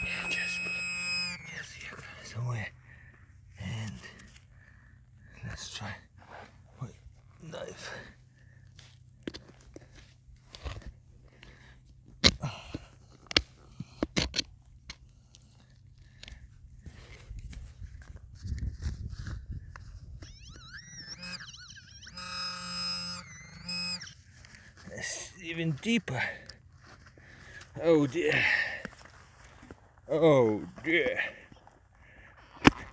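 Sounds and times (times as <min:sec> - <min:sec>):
warbling high tone: 0:00.0 - 0:01.8, 0:20.2 - 0:24.2
buzzing tone: 0:00.0 - 0:02.1, 0:20.2 - 0:24.2.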